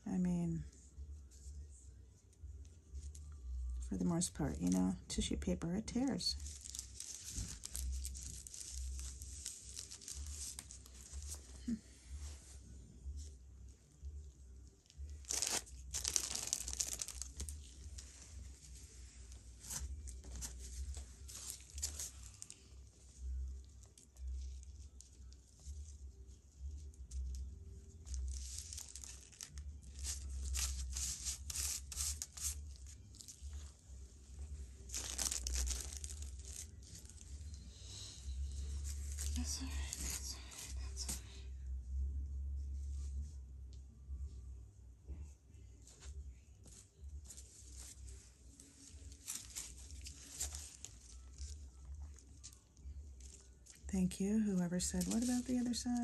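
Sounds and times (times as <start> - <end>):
low steady hum: 0.0 - 56.0
tissue paper tearing and rustling: 6.0 - 12.3, 14.8 - 22.8, 28.0 - 33.7, 34.8 - 41.2, 47.2 - 52.6, 54.6 - 56.0.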